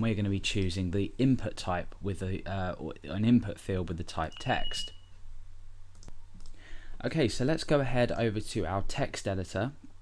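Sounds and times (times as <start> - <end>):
steady low hum: 0.0 - 10.0
computer mouse click: 5.9 - 6.6.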